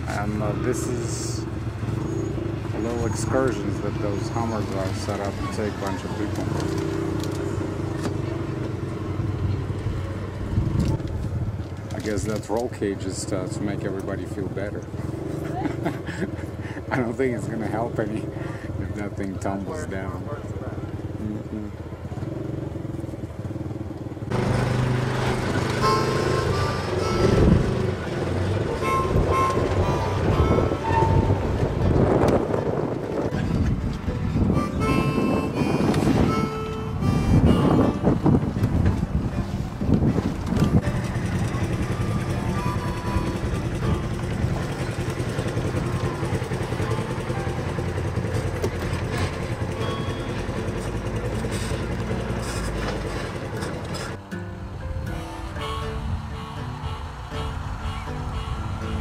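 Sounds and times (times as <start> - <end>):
off-road vehicle engine running: 0.0 - 54.8
background music: 54.2 - 59.0.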